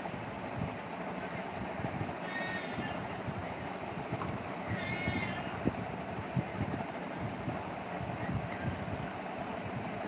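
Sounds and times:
steady background hum: 0.0 - 10.0
high-pitched animal squeak: 4.7 - 5.5.

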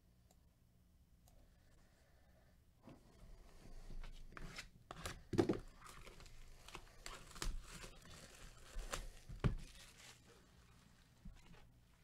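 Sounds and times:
shrink wrap tearing and crinkling: 6.6 - 10.4.

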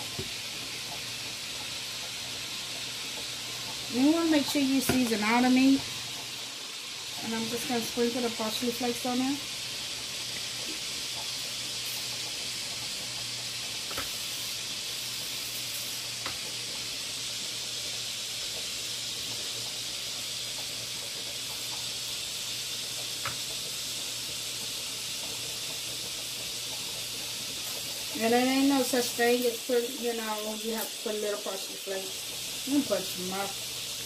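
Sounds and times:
butter sizzling in frying pan: 0.0 - 34.0.

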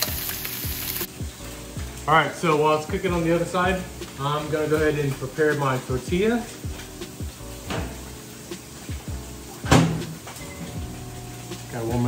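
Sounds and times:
background music: 0.0 - 12.0
door shutting: 9.6 - 10.8.

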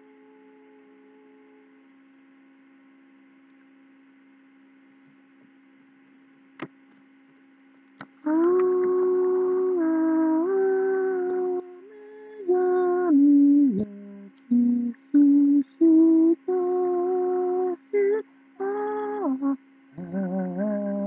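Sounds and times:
faint electrical hum: 0.0 - 21.0
small clicks: 8.0 - 9.4
man humming: 8.2 - 21.0.

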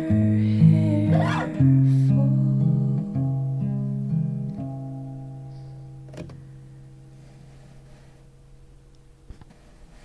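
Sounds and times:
guitar chord ringing out: 0.0 - 7.2.

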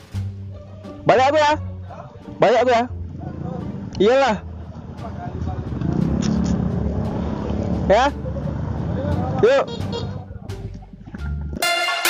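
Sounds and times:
motorcycle engine running: 2.4 - 10.8.

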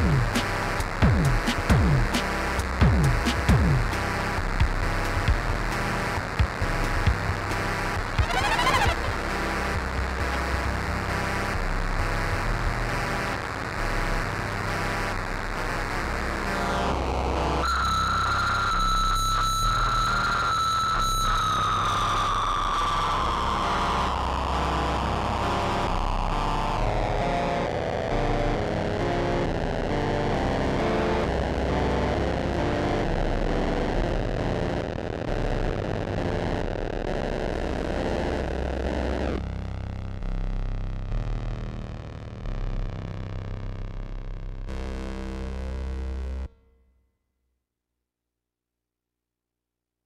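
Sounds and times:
electronic synthesizer music: 8.0 - 15.0
high synth tone gliding down: 8.2 - 9.7.

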